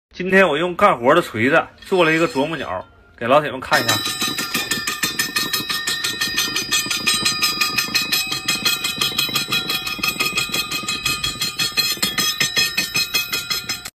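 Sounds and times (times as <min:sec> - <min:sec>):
metal toy tapping steel pole: 0:03.7 - 0:13.9.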